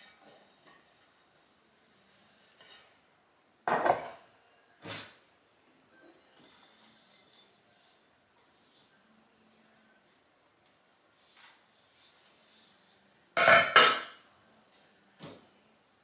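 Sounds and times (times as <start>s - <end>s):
cloth rubbing kitchenware: 0.0s - 3.1s, 6.2s - 14.0s.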